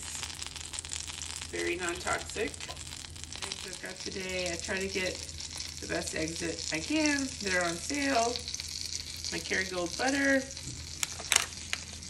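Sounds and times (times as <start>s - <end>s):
butter sizzling in a pan: 0.0s - 12.0s.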